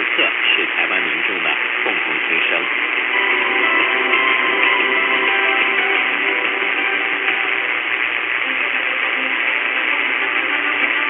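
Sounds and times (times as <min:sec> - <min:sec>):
faint radio tones: 0:00.0 - 0:11.0
radio static hiss: 0:00.0 - 0:11.0.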